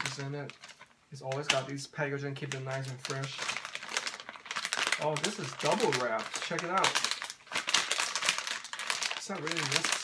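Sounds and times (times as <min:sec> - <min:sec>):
plastic snack packaging crinkling: 0:00.0 - 0:10.0.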